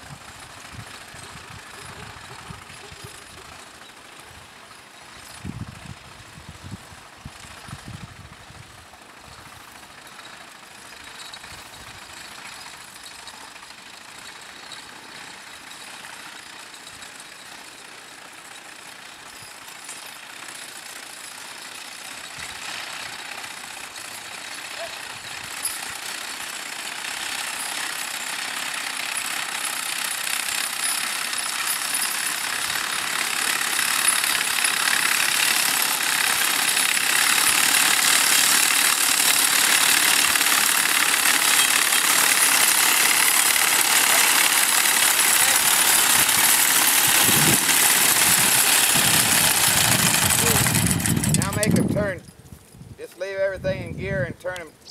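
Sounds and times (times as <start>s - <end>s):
mower cutter bar clattering: 9.3s - 52.0s.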